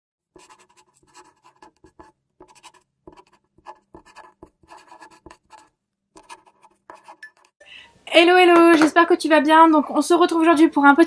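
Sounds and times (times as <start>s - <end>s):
marker writing on paper: 0.4s - 7.6s.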